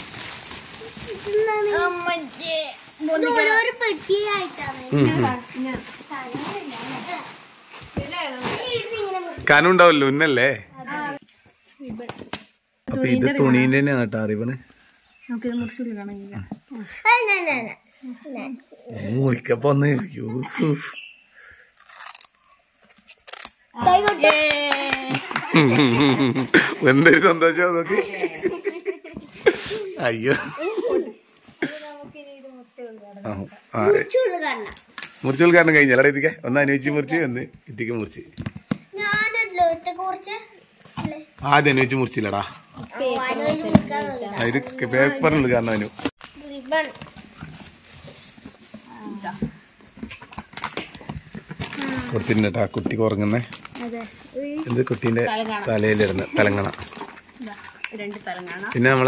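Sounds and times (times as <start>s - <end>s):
cardboard and plastic packaging rustling: 0.0s - 9.8s, 38.4s - 59.0s.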